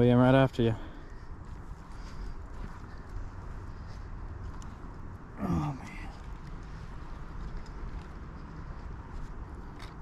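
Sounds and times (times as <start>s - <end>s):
rustling dirt and dry leaves: 0.0s - 10.0s.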